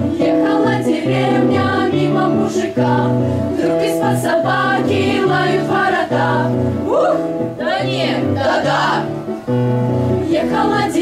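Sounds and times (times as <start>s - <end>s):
children's choir singing: 0.0s - 9.2s, 10.2s - 11.0s.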